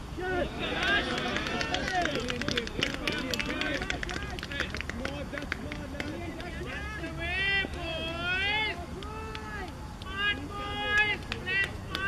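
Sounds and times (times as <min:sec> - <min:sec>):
people talking at once: 0:00.2 - 0:12.0.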